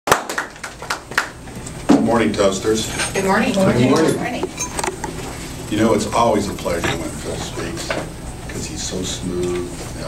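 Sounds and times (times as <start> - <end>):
small group clapping: 0.1 - 1.4.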